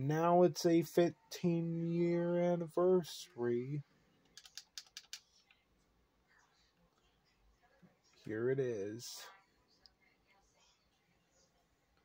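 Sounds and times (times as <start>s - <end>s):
faint computer mouse clicks: 4.3s - 5.6s.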